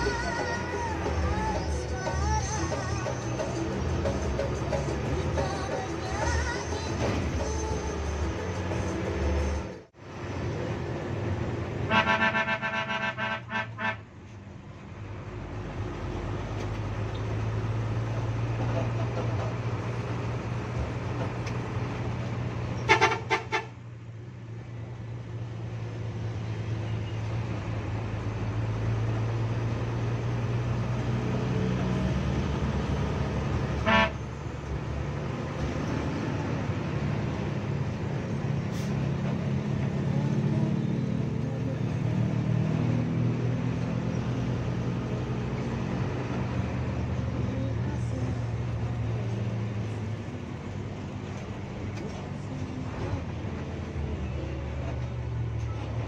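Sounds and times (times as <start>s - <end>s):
bus engine running: 0.0s - 56.0s
bus horn toots: 11.8s - 14.1s, 22.8s - 23.8s, 33.7s - 34.4s.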